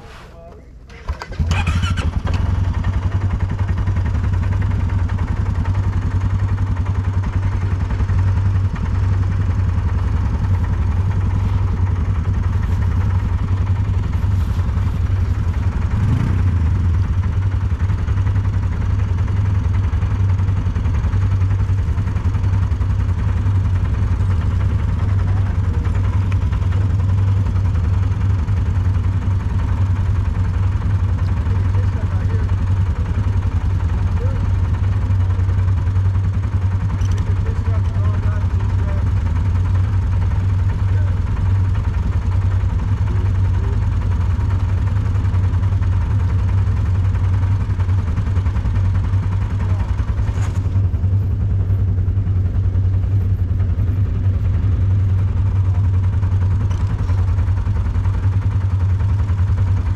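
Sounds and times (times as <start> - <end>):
quad engine starting and idling: 0.0 - 59.9.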